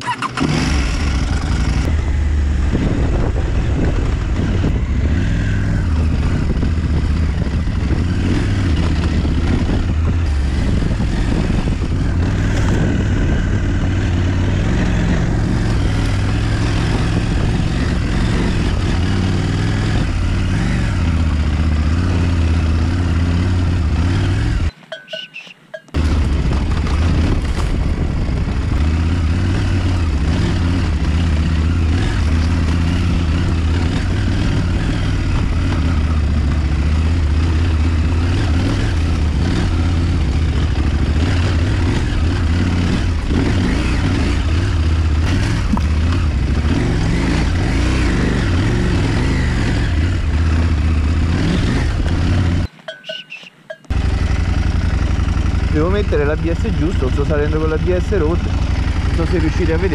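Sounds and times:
motorcycle engine running: 0:00.0 - 0:59.9
wind and tyre noise: 0:00.0 - 0:59.9.

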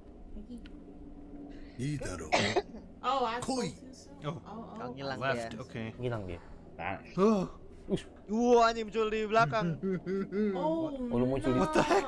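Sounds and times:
person coughing: 0:02.2 - 0:02.8.

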